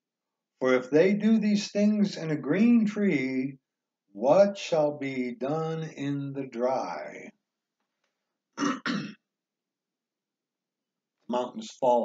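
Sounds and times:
man clearing his throat: 8.6 - 9.2.

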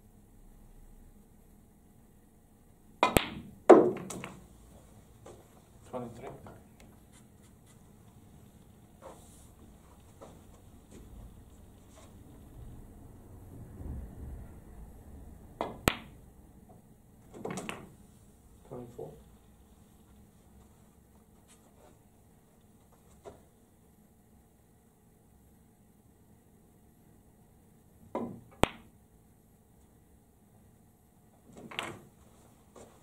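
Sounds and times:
cue tip striking ball: 3.0 - 4.4, 15.6 - 16.2, 17.3 - 18.0
snooker balls clicking: 3.0 - 4.6, 15.6 - 18.0, 28.2 - 28.9, 31.5 - 32.2.

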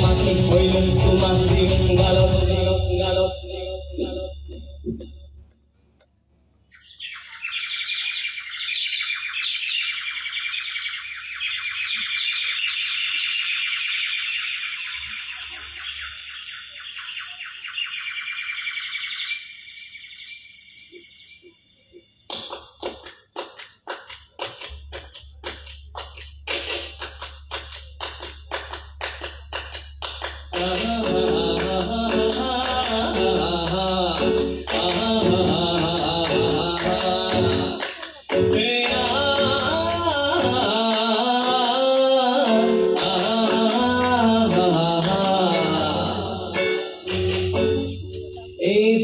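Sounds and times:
shrill high-pitched melody: 7.4 - 21.9, 45.3 - 49.0
sharp percussive strikes: 26.0 - 27.5, 46.8 - 48.6.

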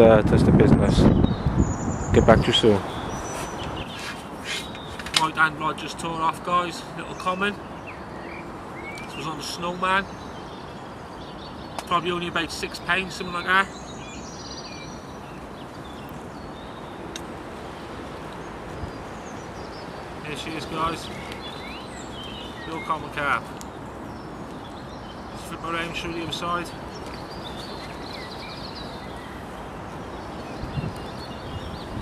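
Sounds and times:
outdoor background rush: 0.0 - 32.0
high bird calls: 0.8 - 32.0.

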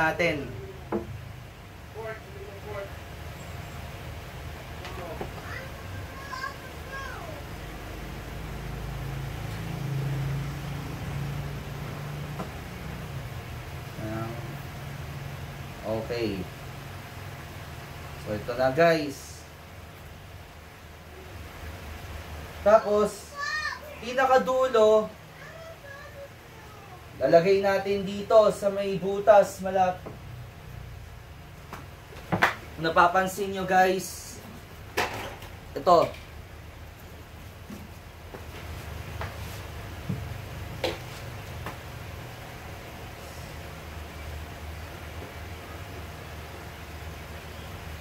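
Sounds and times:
low background hum: 0.0 - 48.0
faint hiss: 43.0 - 44.8.

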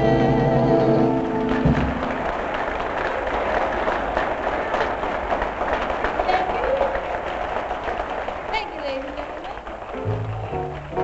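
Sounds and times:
audience applauding: 0.6 - 11.0.

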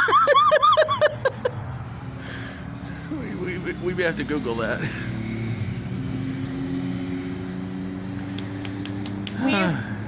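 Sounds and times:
background traffic noise: 0.0 - 10.0
steady engine hum: 0.0 - 10.0.

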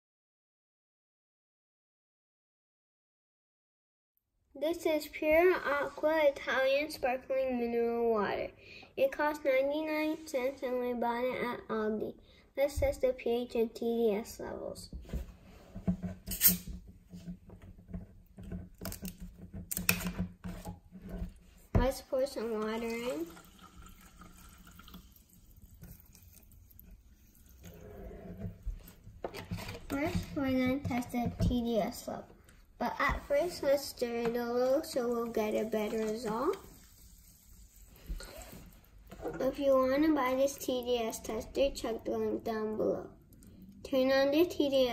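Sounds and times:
water swishing in plastic cup: 20.4 - 31.5, 33.0 - 41.9
carbonation hissing: 22.3 - 28.1, 34.8 - 38.8.

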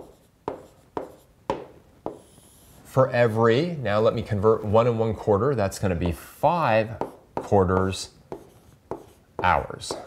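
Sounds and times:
stylus tapping on tablet screen: 0.0 - 2.3.

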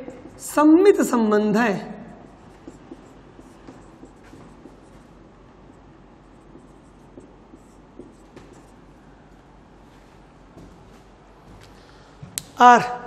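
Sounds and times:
marker scratching on whiteboard: 0.0 - 0.7, 2.2 - 8.9.

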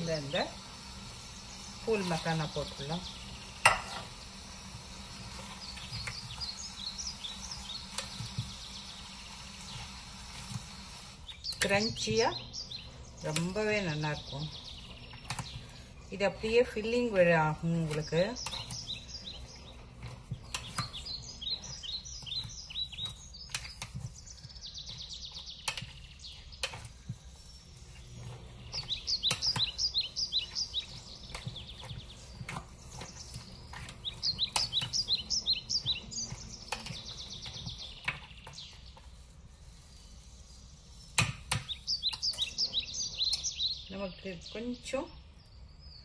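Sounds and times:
bird chirping: 0.0 - 46.0
spatula stirring in steel bowl: 13.2 - 42.7.

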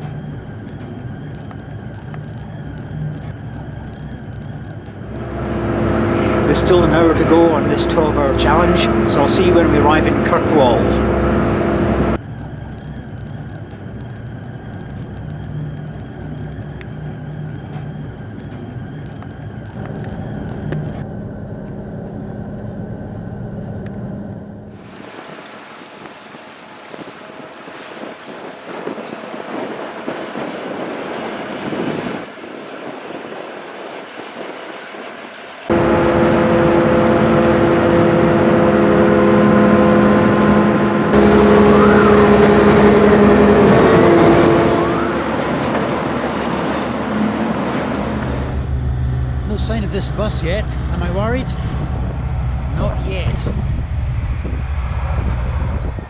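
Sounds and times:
machinery drone with steady tones: 0.0 - 25.6, 35.2 - 56.0
ship engines humming: 0.0 - 56.0
wind and water hiss: 24.7 - 37.8.

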